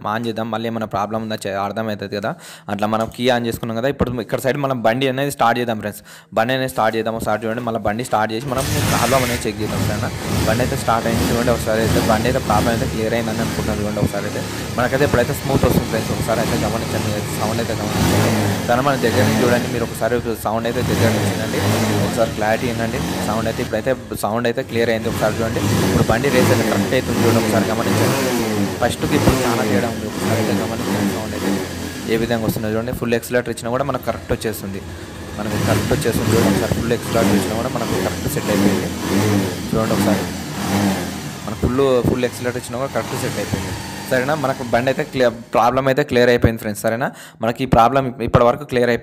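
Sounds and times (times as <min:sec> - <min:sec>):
person speaking: 0:00.0 - 0:40.4, 0:41.4 - 0:49.0
motorcycle engine running: 0:08.4 - 0:45.8.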